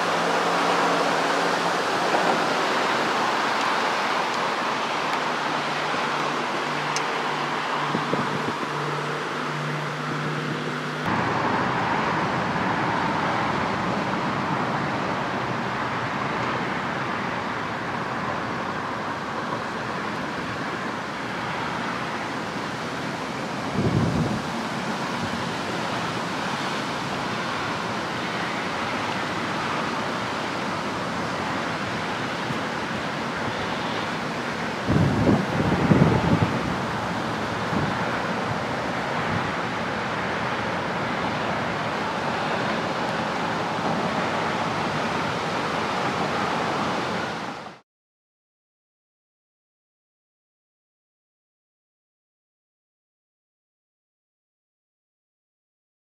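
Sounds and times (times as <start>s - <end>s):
wind buffeting microphone: 0.0s - 14.9s, 22.9s - 29.5s, 34.6s - 47.5s
distant road traffic: 0.0s - 47.8s
wind hiss: 0.0s - 47.8s.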